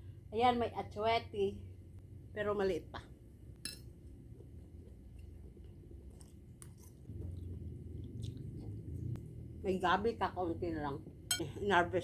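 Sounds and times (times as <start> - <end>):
person chewing noodles: 4.3 - 9.4
low rumble: 7.0 - 11.6.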